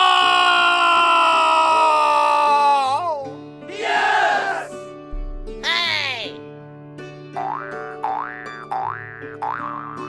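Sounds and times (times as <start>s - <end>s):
background music: 0.0s - 10.0s
rising boing sounds: 7.4s - 10.0s.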